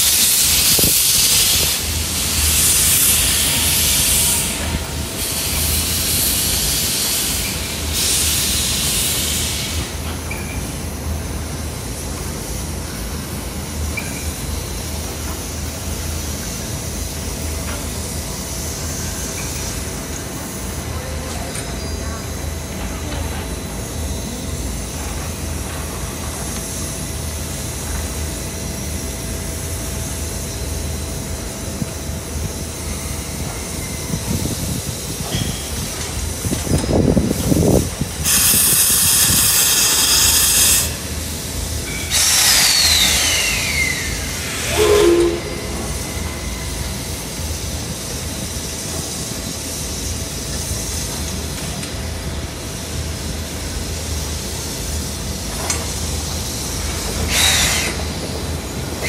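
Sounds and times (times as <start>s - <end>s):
locomotive steam hissing: 0.0s - 59.0s
low locomotive puffs: 44.2s - 49.3s
short low whistle toot: 44.6s - 46.8s.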